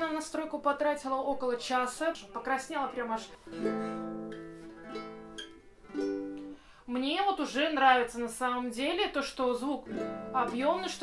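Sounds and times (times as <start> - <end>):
small guitar strummed: 3.5 - 6.6.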